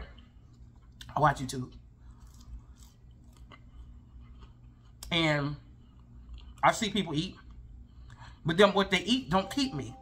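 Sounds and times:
person chewing fries: 0.1s - 1.1s, 1.7s - 8.4s.

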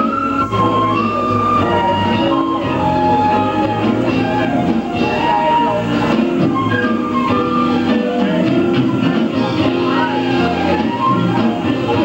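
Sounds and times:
live smooth jazz band: 0.0s - 12.0s.

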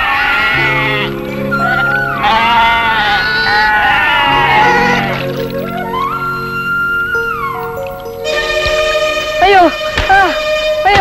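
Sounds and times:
sheep bleating: 0.0s - 6.2s
film music with low notes: 0.0s - 11.0s.

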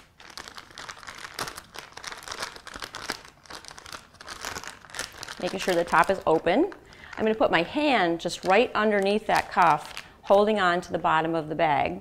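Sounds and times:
plastic bag crinkling: 0.0s - 10.2s.

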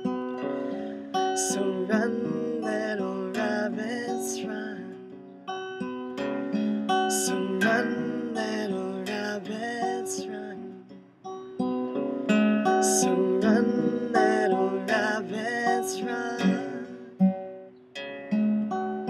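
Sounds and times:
acoustic guitar strummed and picked: 0.0s - 19.0s.

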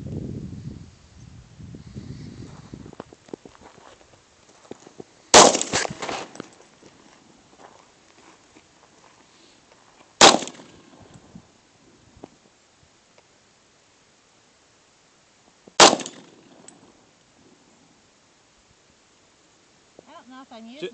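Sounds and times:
pistol shots with echo: 5.4s - 5.8s, 10.2s - 10.9s, 15.8s - 16.7s.

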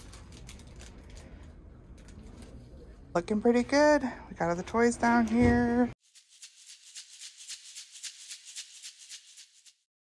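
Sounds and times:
shaker rattling: 6.0s - 9.9s.

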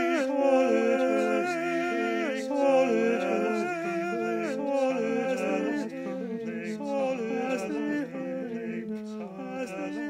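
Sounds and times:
man singing a cappella harmony: 0.0s - 10.0s.

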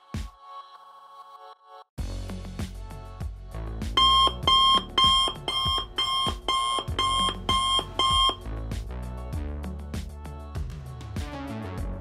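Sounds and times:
background music: 0.0s - 12.0s
phone alarm beeping: 4.0s - 8.4s.

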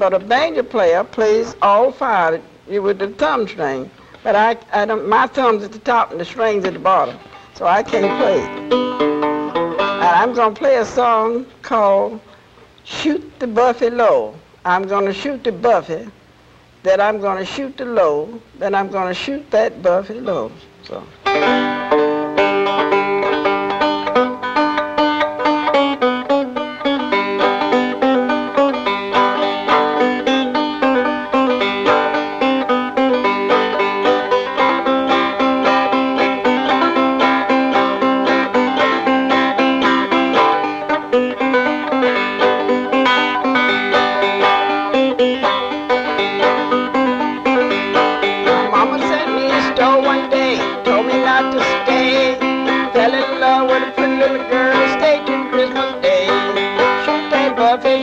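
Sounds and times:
banjo finger-picking tune: 0.0s - 16.1s, 21.2s - 58.0s.

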